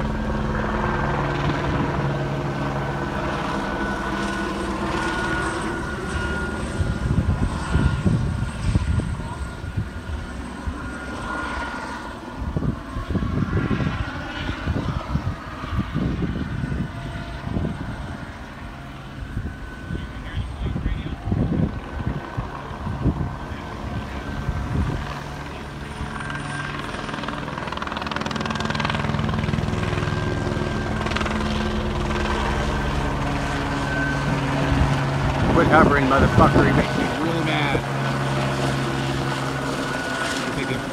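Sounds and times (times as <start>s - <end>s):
helicopter circling overhead: 0.0s - 40.9s.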